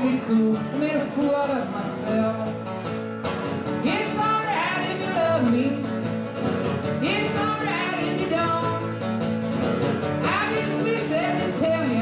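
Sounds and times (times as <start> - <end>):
man singing: 0.0 - 2.7, 3.8 - 6.1, 7.0 - 9.1, 10.2 - 12.0
acoustic guitar strummed: 0.0 - 12.0.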